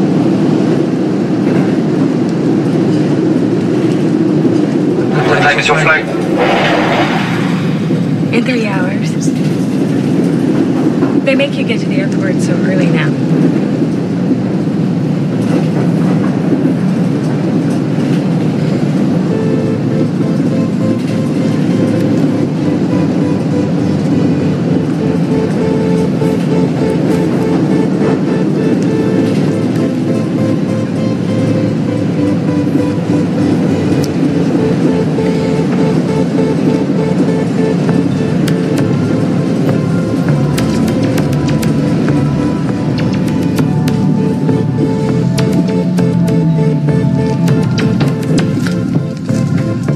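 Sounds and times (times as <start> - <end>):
train rumbling: 0.0 - 49.9
soundtrack music: 5.0 - 10.5, 18.6 - 49.9.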